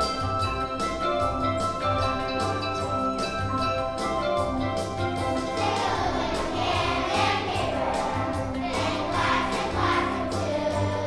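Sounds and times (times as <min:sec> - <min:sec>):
instrumental accompaniment: 0:00.0 - 0:11.0
children's choir singing: 0:05.4 - 0:11.0.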